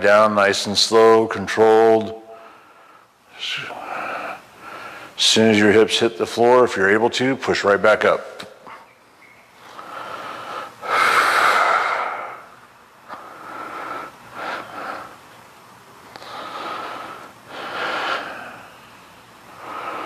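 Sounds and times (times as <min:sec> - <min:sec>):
man breathing heavily: 0:02.3 - 0:05.2, 0:09.6 - 0:15.3, 0:16.0 - 0:20.0.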